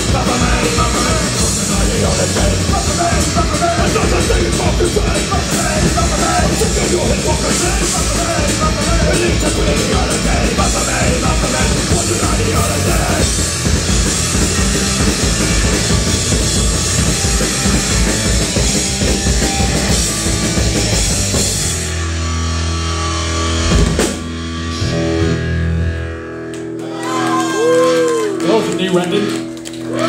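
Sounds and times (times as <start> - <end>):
punk rock band playing live: 0.0 - 27.1.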